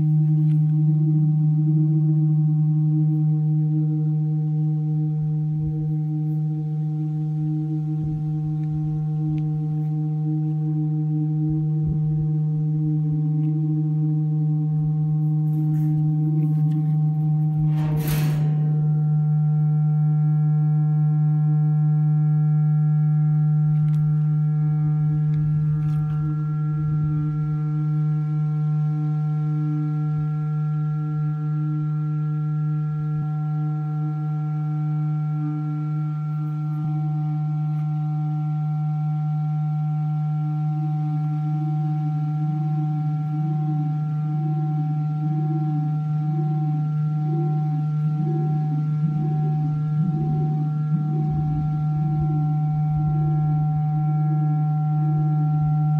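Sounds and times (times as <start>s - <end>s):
low feedback tone: 0.0s - 55.9s
higher ringing feedback tones: 13.9s - 35.3s, 42.0s - 55.9s
brief rush of noise: 17.6s - 19.1s.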